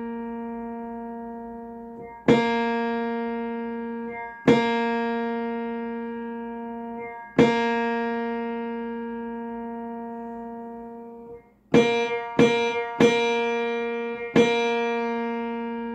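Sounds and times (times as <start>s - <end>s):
piano note ringing: 0.0s - 15.9s.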